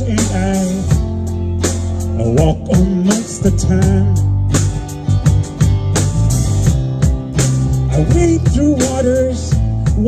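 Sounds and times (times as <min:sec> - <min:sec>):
person singing: 0:00.0 - 0:01.0, 0:02.1 - 0:04.3, 0:07.8 - 0:10.0
drum kit beat: 0:00.0 - 0:10.0
electric bass: 0:00.0 - 0:10.0
electric guitar: 0:00.0 - 0:10.0.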